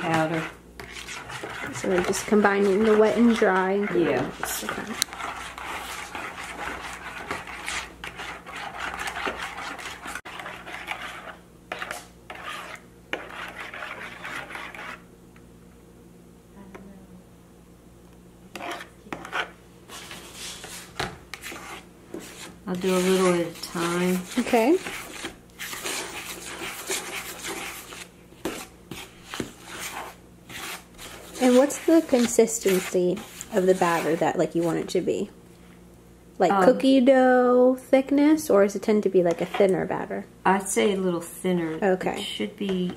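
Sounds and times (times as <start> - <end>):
metal spoon scraping plastic bowl: 0.0 - 15.0, 18.5 - 34.8.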